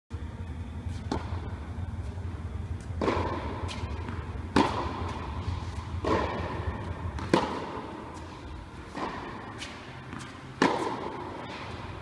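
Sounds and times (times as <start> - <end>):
steady low hum: 0.1 - 12.0
tennis racket hitting ball: 1.0 - 1.4, 2.8 - 11.8.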